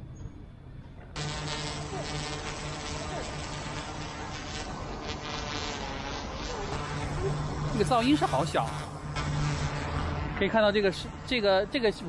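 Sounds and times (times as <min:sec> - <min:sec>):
drone propellers buzzing: 0:01.2 - 0:12.0.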